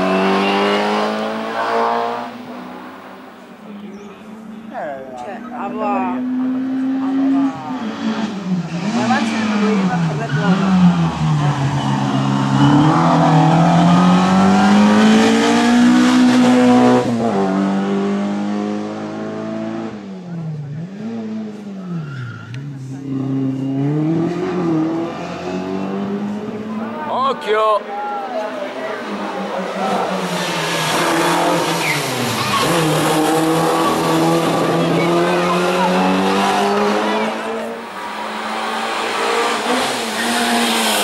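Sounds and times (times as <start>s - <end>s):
car engine revving hard: 0.0s - 3.1s, 5.5s - 21.7s, 22.8s - 27.1s, 28.6s - 41.0s.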